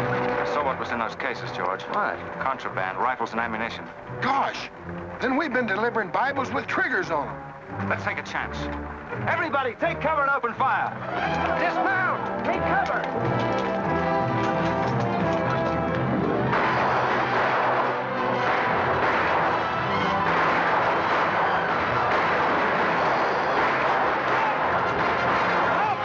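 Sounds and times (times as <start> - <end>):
galloping horses: 0.0 - 26.0
orchestral film score: 0.0 - 26.0
gunshots: 16.3 - 26.0.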